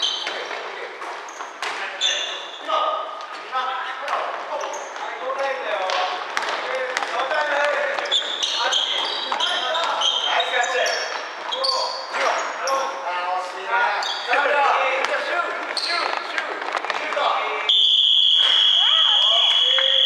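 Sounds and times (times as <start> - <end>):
sneakers squeaking on floor: 0.0 - 3.4, 4.1 - 13.1, 13.9 - 14.5, 15.6 - 16.3, 17.6 - 20.0.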